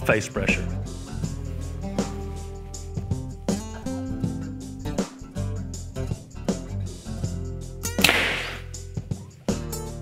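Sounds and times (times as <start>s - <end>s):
background music: 0.0s - 10.0s
arrow rushing into target: 8.0s - 8.8s
bowstring release crack: 8.0s - 8.8s.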